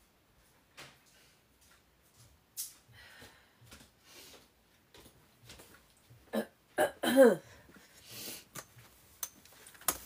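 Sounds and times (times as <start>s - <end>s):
woman burping: 6.3s - 7.5s.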